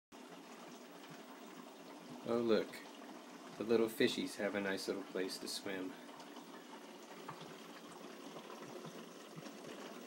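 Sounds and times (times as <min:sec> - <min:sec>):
water rushing into window well: 0:00.2 - 0:10.0.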